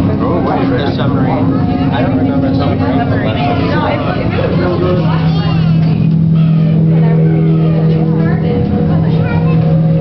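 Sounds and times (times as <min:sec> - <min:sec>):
low machine hum: 0:00.0 - 0:10.0
people talking indistinctly: 0:00.0 - 0:10.0.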